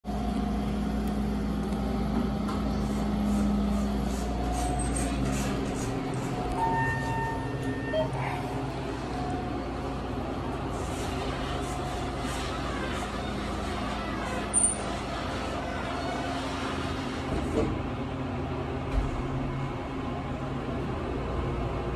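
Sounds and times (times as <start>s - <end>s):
elevator machinery hum: 0.1s - 21.9s
electronic tones: 6.4s - 8.5s.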